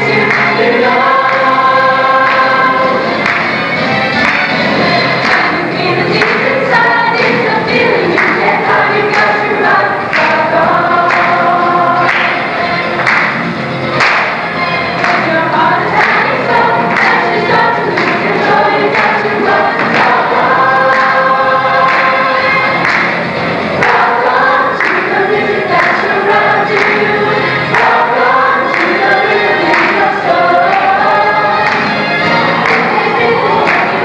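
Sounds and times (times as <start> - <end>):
chorus singing together: 0.0 - 34.0
musical accompaniment with steady beat: 0.0 - 34.0.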